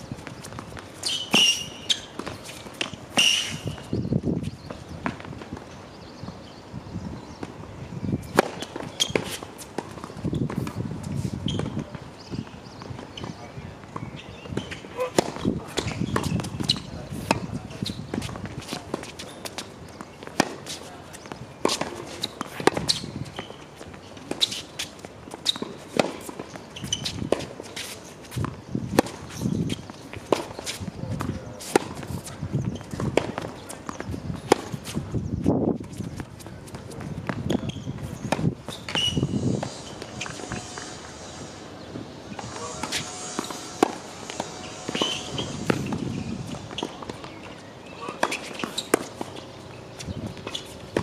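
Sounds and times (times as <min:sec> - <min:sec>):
players' footsteps: 0:08.3 - 0:51.0
racket striking ball: 0:36.7 - 0:49.4.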